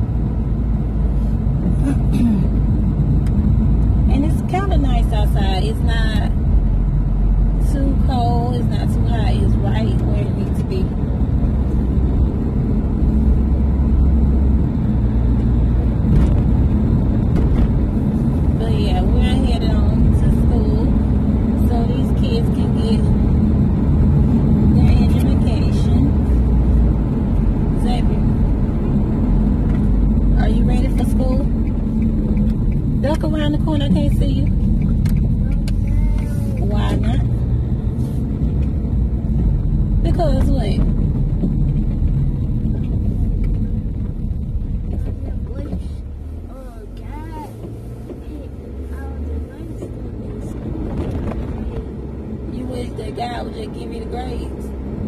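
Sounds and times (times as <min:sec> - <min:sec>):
car engine and road rumble: 0:00.0 - 0:55.0
people talking: 0:04.1 - 0:06.4, 0:07.6 - 0:11.0, 0:18.6 - 0:21.0, 0:21.6 - 0:23.2, 0:24.7 - 0:26.2, 0:27.8 - 0:28.3, 0:30.4 - 0:31.5, 0:33.0 - 0:34.6, 0:35.4 - 0:37.4, 0:40.0 - 0:40.9, 0:45.0 - 0:50.6, 0:52.5 - 0:54.7.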